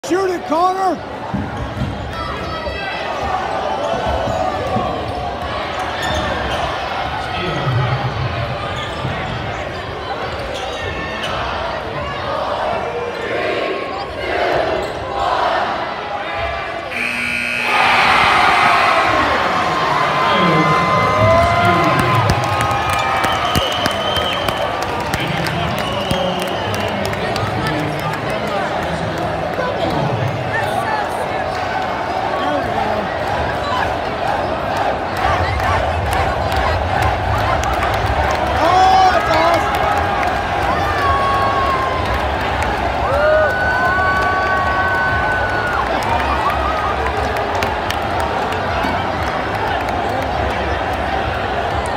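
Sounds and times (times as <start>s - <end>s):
gymnasium crowd noise: 0.0s - 51.9s
crowd cheering and shouting: 15.5s - 51.9s
final buzzer: 16.9s - 18.8s.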